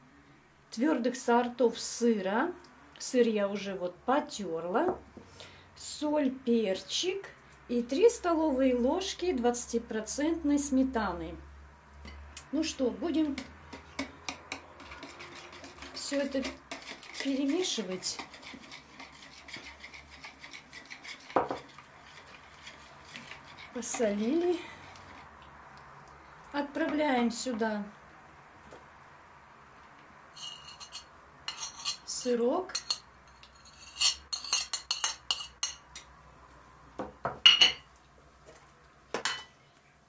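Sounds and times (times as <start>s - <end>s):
whisk scraping a plastic bowl: 13.9s - 25.3s
cutlery clinking on china saucer: 32.7s - 35.8s.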